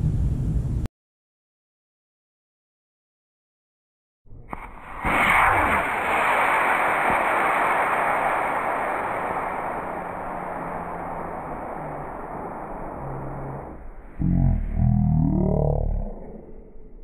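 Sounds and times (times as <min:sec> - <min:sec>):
model rocket lifting off: 0:04.3 - 0:16.5.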